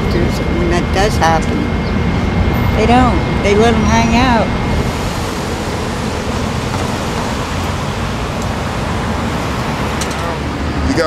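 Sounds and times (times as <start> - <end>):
city street traffic noise: 0.0 - 11.0.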